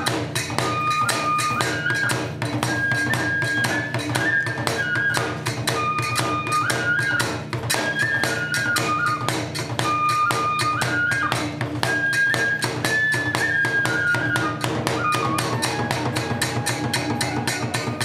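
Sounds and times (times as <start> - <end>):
bamboo flute melody: 0.0 - 18.0
small hand cymbals: 0.0 - 18.0.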